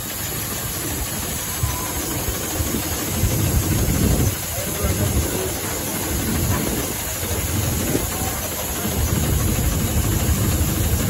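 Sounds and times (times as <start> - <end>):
steam hissing: 0.0 - 11.0
steam locomotive low rumble: 0.0 - 11.0.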